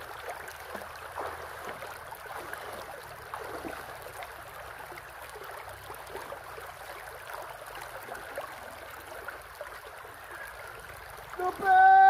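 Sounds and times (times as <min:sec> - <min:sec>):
creek running over stones: 0:00.0 - 0:12.0.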